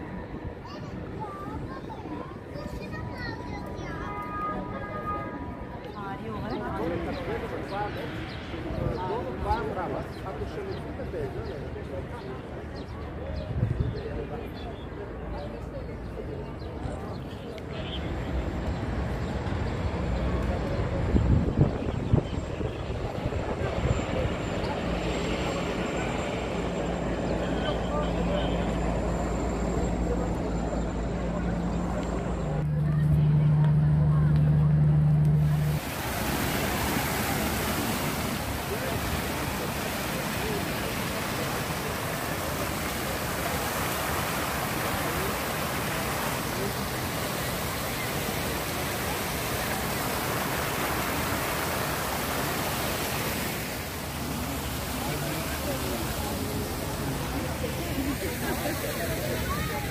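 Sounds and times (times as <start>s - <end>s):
fountain water splashing: 35.2s - 59.9s.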